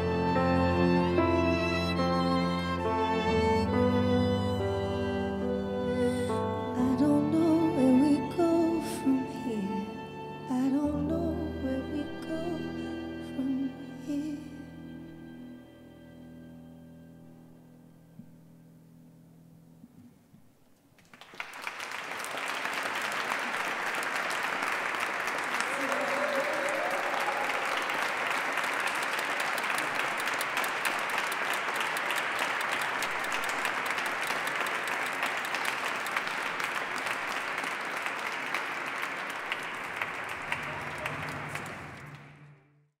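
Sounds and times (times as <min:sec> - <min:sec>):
audience applauding: 0:21.0 - 0:42.6.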